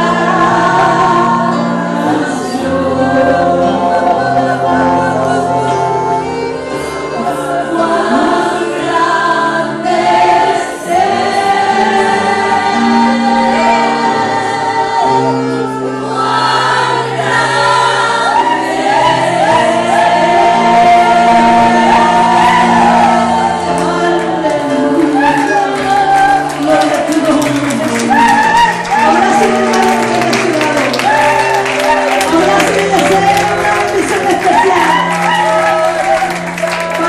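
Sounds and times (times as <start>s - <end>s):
guitar: 0.0s - 37.0s
women singing gospel: 0.0s - 37.0s.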